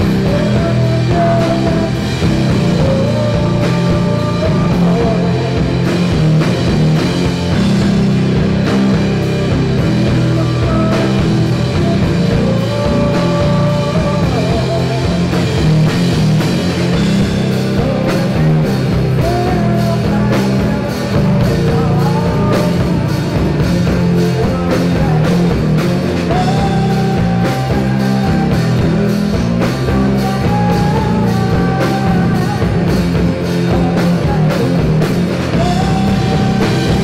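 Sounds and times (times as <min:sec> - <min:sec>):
drum kit beat: 0:00.0 - 0:37.0
electric guitars: 0:00.0 - 0:37.0
singer holding long notes: 0:00.0 - 0:37.0.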